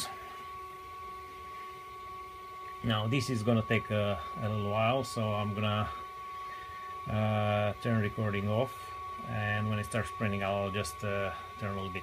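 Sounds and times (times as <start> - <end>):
printer humming with high whine: 0.0 - 12.0.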